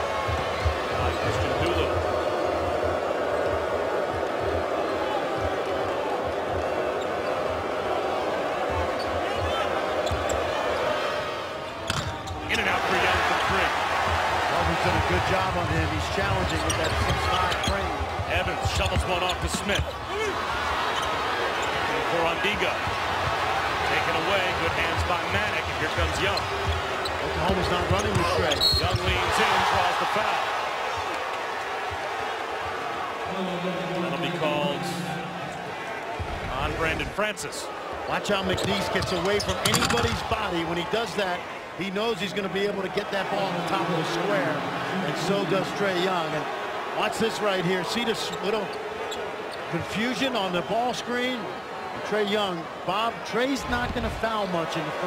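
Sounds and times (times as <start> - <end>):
arena crowd noise: 0.0 - 55.0.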